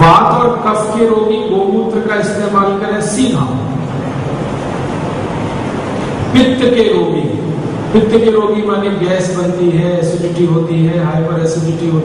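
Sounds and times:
background hiss and low rumble: 0.0 - 12.0.

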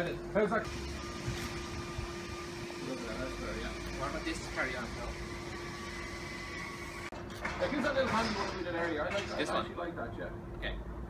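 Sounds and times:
steady mechanical hum: 0.0 - 11.0.

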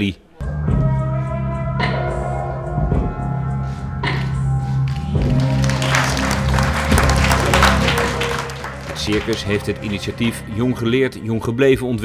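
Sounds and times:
background music: 0.3 - 12.0
audience applauding: 4.9 - 10.8.

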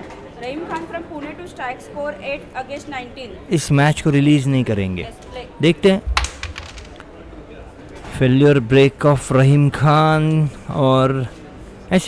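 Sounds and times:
carrom pieces clattering: 6.1 - 7.1.

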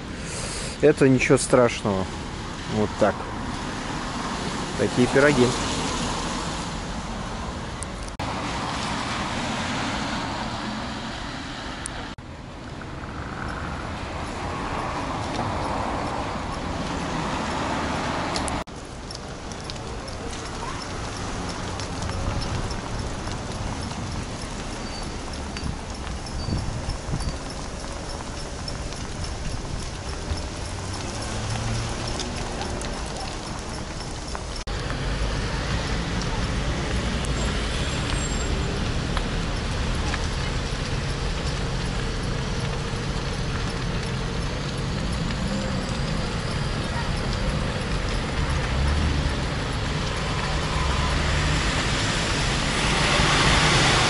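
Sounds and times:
tyre noise: 14.3 - 54.0
bike frame rattling over bricks: 18.8 - 34.6.

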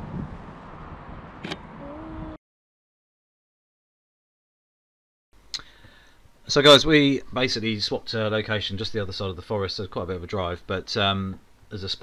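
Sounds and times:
wind rumbling on microphone: 0.0 - 2.4
sharp click: 1.4 - 1.6.

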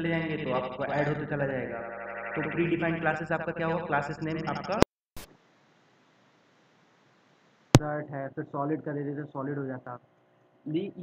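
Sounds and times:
man speaking: 0.0 - 1.8, 2.4 - 4.8, 7.8 - 10.0.

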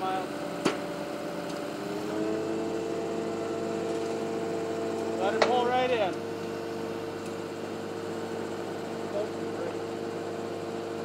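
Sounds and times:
diesel engine running under load: 0.0 - 11.0.

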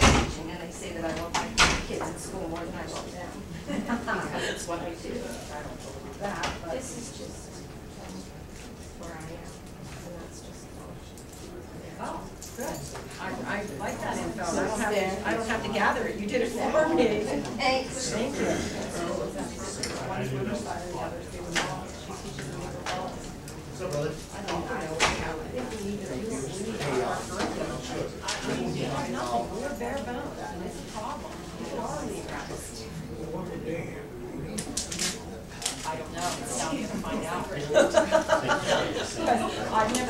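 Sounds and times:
low background chatter: 0.0 - 40.0
overlapping conversation: 0.0 - 40.0.

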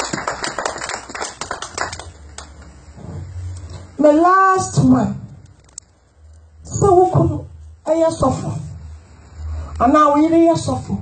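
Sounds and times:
congregation clapping: 0.0 - 2.6.

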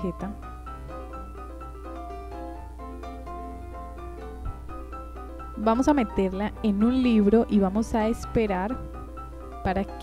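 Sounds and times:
piano-like keyboard melody: 0.0 - 10.0
steady low hum: 0.0 - 10.0.

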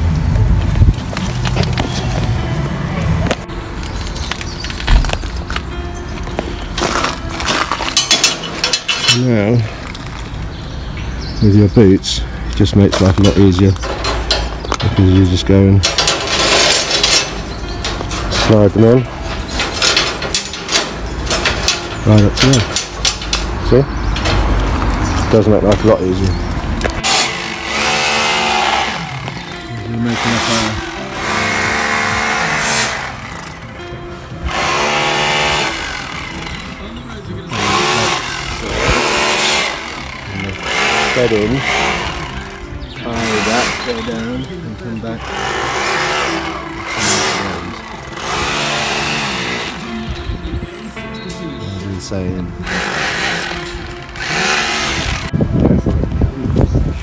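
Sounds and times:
steel rebar scraping metal: 6.7 - 10.3, 12.6 - 26.4, 27.0 - 33.8, 34.5 - 50.2, 51.9 - 55.4
engine revving: 12.6 - 33.7, 34.4 - 50.1, 52.5 - 55.4.

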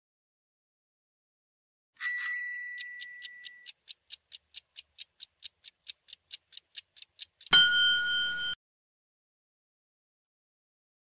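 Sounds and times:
clock ticking: 2.2 - 8.6
bright chime: 7.5 - 8.6
ringing end tone: 7.5 - 8.6.

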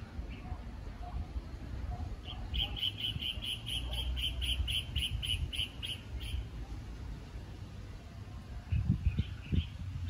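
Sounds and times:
wind rumble on microphone: 0.0 - 3.3, 4.4 - 6.4, 8.4 - 10.0.

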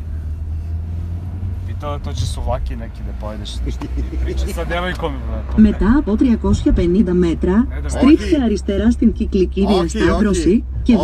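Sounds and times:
car interior drone: 0.0 - 11.0
people talking: 1.7 - 11.0.

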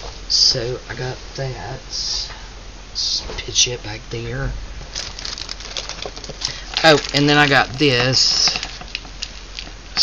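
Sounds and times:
craft items rustling and clicking: 4.9 - 9.8.

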